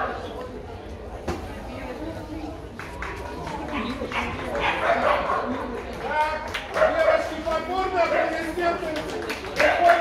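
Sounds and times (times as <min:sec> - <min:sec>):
people talking: 0:00.0 - 0:10.0
dog barking: 0:04.1 - 0:05.6.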